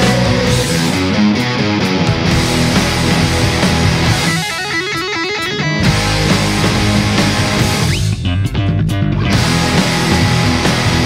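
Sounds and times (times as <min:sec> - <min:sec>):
guitar run of notes: 0:00.0 - 0:11.0
rock band playing: 0:00.0 - 0:11.0.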